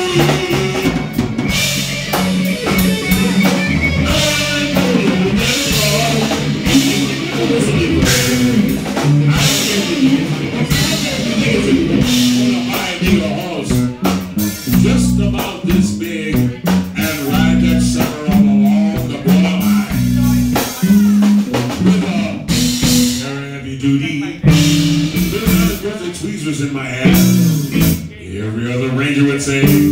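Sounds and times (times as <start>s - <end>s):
drum kit: 0.0s - 23.5s, 24.1s - 28.2s, 29.2s - 29.9s
bass guitar: 0.0s - 29.9s
electric guitars: 0.0s - 29.9s.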